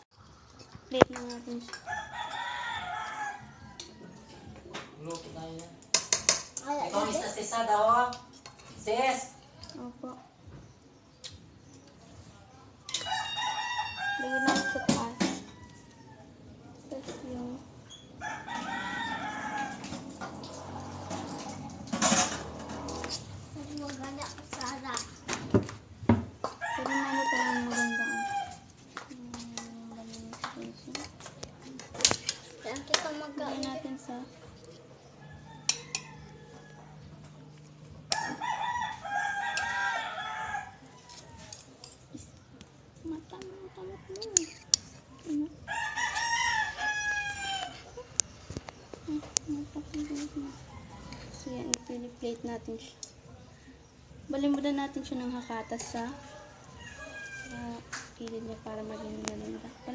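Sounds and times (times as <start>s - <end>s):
rooster crowing: 1.9s - 4.7s, 12.9s - 16.3s, 17.9s - 23.2s, 26.4s - 28.7s, 35.2s - 37.4s, 38.1s - 41.8s, 45.6s - 48.0s, 50.5s - 52.1s, 55.2s - 59.9s.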